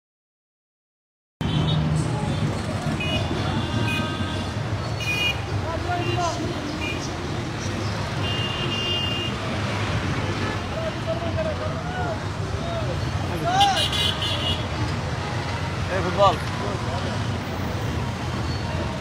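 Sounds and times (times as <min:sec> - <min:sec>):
low engine rumble of traffic: 0:01.4 - 0:19.0
voices: 0:02.0 - 0:19.0
horn honks: 0:08.2 - 0:09.4.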